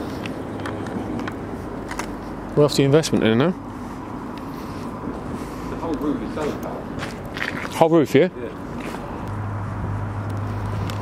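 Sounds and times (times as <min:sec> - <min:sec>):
soft footsteps: 0:00.0 - 0:07.9, 0:08.6 - 0:11.0
city street hum: 0:00.0 - 0:11.0.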